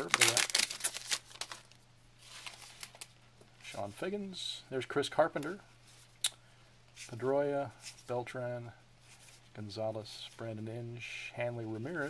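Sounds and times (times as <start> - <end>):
cards rustling: 0.0 - 3.1
wrapper crinkling: 0.0 - 3.2.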